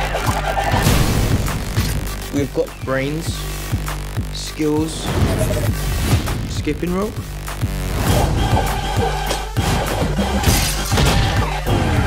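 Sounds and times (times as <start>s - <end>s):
film trailer music: 0.0s - 12.0s
glass shattering: 10.4s - 11.4s.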